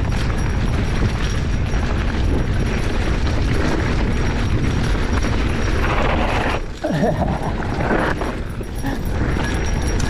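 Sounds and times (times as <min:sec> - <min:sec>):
bike tyres rattling over dirt: 0:00.0 - 0:10.0
wind on microphone: 0:00.0 - 0:10.0.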